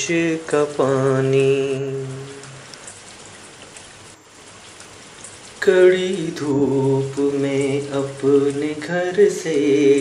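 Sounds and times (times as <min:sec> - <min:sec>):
steady rain: 0:00.0 - 0:10.0.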